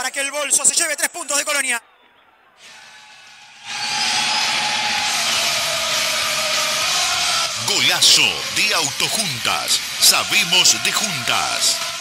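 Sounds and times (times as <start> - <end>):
loud rushing noise: 3.6 - 12.0.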